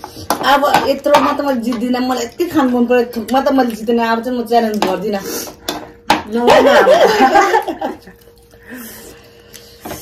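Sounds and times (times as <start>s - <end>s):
woman's voice: 0.3s - 5.5s, 6.1s - 7.6s.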